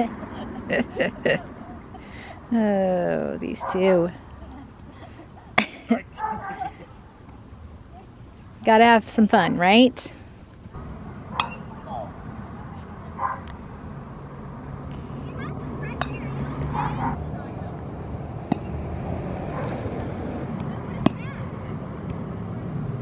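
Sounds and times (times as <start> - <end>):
low rumble: 10.7 - 16.7
baseball bat hitting balls: 10.9 - 12.1, 14.9 - 17.2, 18.4 - 18.9, 19.6 - 22.2.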